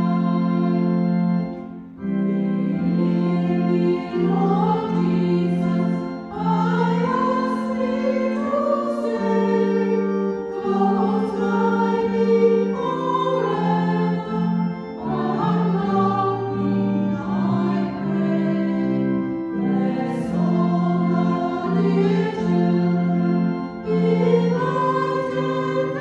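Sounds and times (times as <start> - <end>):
choir singing: 0.0 - 1.0, 2.3 - 26.0
organ: 0.0 - 26.0.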